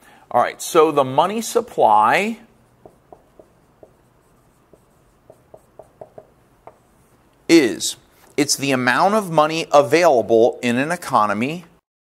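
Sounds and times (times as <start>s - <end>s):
marker squeaking on whiteboard: 2.5s - 7.4s.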